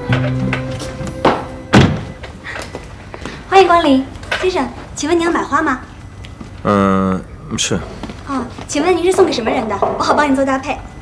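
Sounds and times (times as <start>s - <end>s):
music with low held tones: 0.0s - 2.4s.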